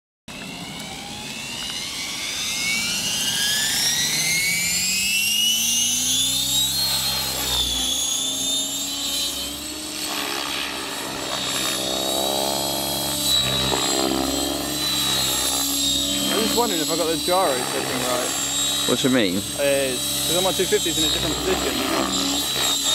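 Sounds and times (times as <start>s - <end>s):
electric motor whine: 0.3s - 22.9s
helicopter rotor blades: 0.3s - 22.9s.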